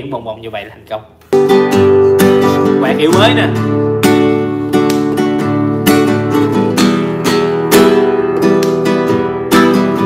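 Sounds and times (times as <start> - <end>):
classical guitar strumming: 1.3 - 10.0.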